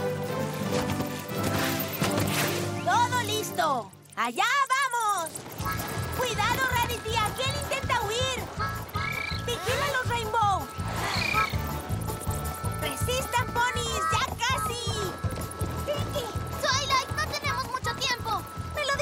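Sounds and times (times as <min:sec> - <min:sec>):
upbeat background music: 0:00.0 - 0:04.2, 0:05.6 - 0:19.0
high-pitched squeaky chirps: 0:02.7 - 0:19.0.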